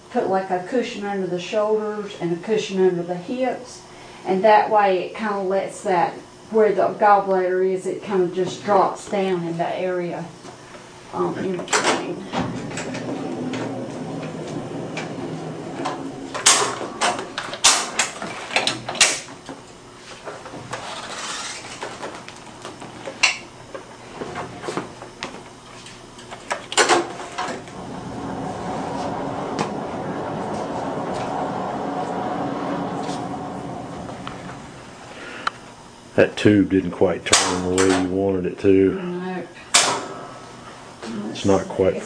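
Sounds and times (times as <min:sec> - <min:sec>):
steady noise: 0:10.9 - 0:38.8.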